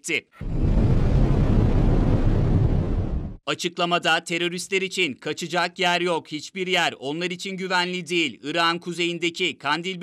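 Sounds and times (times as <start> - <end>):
deep rumble of bomb blast: 0.4 - 3.4.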